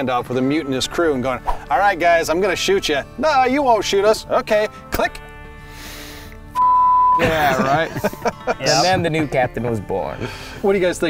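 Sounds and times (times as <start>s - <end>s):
faint background music: 0.0s - 11.0s
censor bleep tone: 6.6s - 7.4s.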